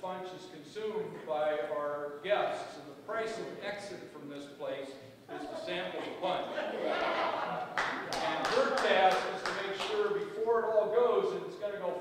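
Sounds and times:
man speaking in a large hall: 0.0 - 12.0.

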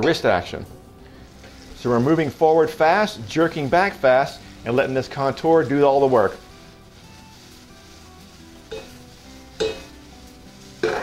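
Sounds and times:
soft background music: 0.0 - 11.0
tomatoes and garlic sizzling: 0.0 - 11.0.

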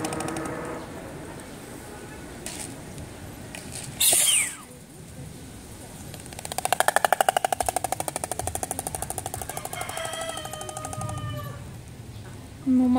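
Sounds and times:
stork clattering its bill: 6.0 - 11.6.

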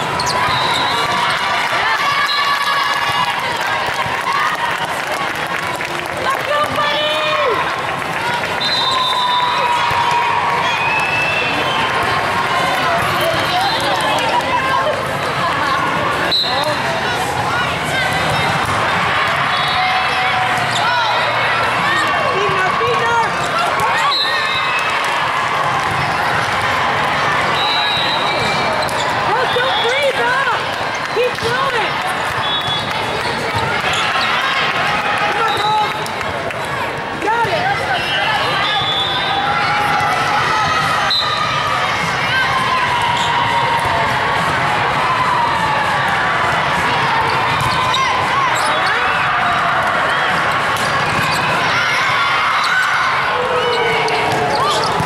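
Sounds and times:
overlapping voices and shouts: 0.0 - 55.0
sneakers squeaking on court: 0.1 - 1.0, 27.9 - 29.8, 50.8 - 51.6, 54.2 - 55.0
referee whistles: 0.2 - 1.2, 8.6 - 9.8, 16.3 - 16.7, 24.0 - 24.7, 27.6 - 30.0, 32.4 - 32.9, 37.9 - 39.4, 41.0 - 41.5.

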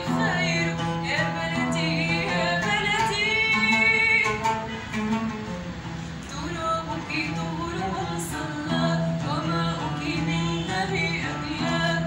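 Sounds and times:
woman singing: 0.0 - 5.0, 6.2 - 12.0
stringed instrument playing: 0.0 - 6.4.

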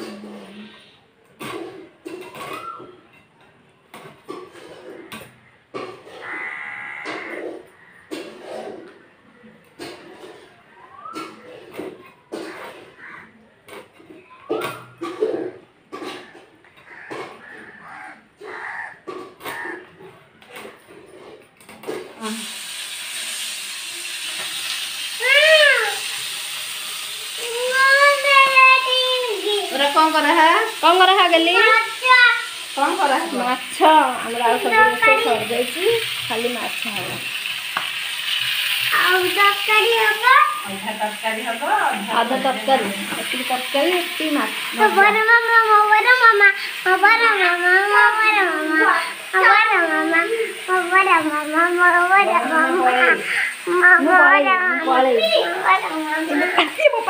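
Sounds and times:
frying sizzle: 21.8 - 57.0.

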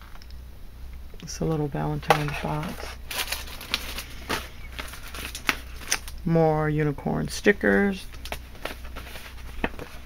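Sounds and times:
plastic and paper rustling: 1.5 - 6.2, 7.6 - 10.0.

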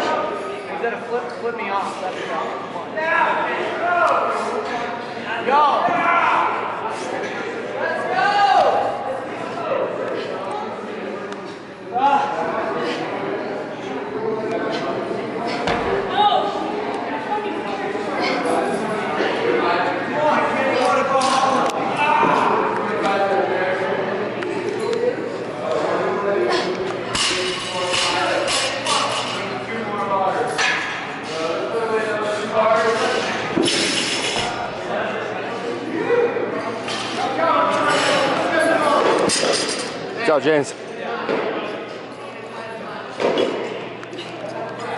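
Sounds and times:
voices talking and calling out: 0.0 - 44.9.

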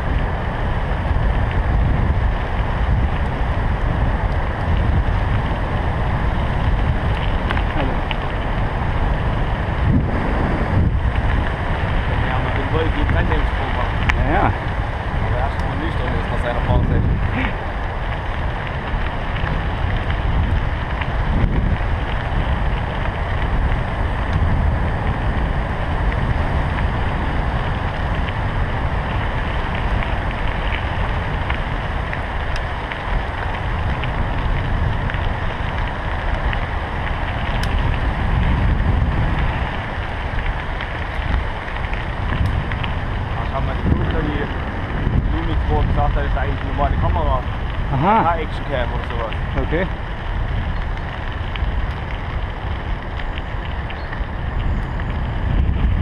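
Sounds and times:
tyres rumbling on gravel: 0.0 - 56.0
wind buffeting microphone: 0.0 - 56.0.

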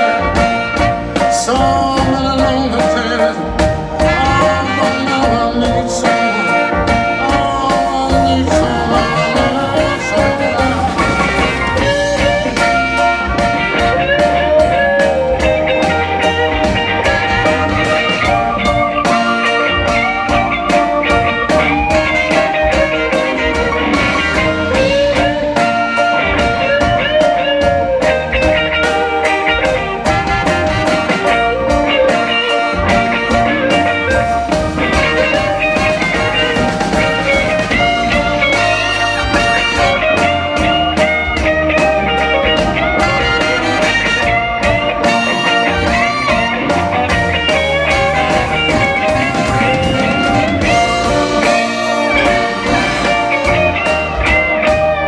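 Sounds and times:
bass: 0.0 - 55.0
electric guitar with bent notes: 0.0 - 55.0
keyboard: 0.0 - 55.0
steady drum beat: 0.0 - 55.0.

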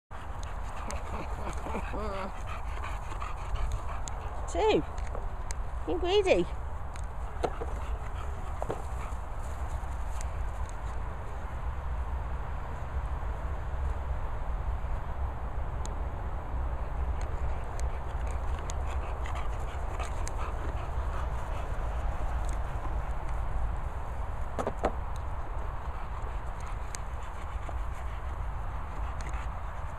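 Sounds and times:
dogs panting: 0.1 - 11.2, 16.8 - 29.9
faint dog noises: 0.2 - 5.2
wind rumble on microphone: 0.2 - 29.9.

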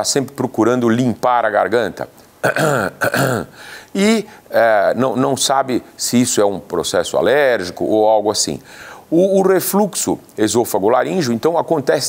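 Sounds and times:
man clearing throat: 2.4 - 3.6.

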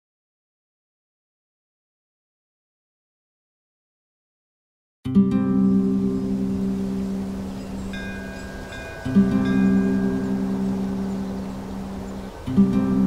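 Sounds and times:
low held ambient note: 5.2 - 13.0
faint high chime tones: 6.0 - 12.6.

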